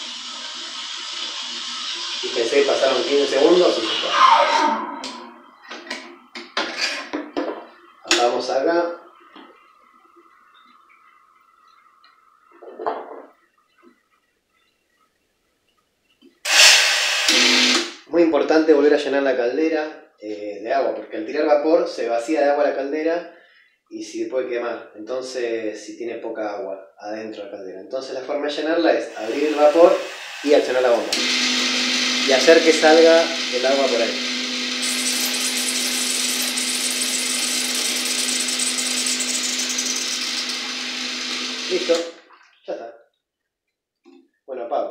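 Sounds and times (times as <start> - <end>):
loud hiss of steam: 16.5 - 17.8, 29.1 - 38.4
espresso machine pump buzzing: 16.5 - 18.0, 29.1 - 42.1.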